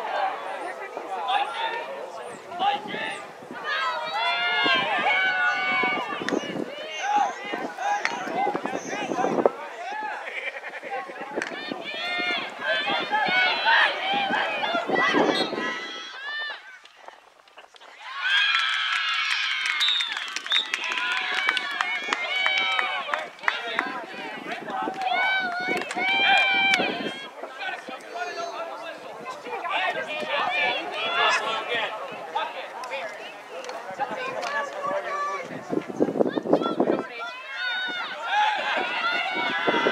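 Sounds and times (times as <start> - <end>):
voices shouting and calling out: 0.0 - 39.9.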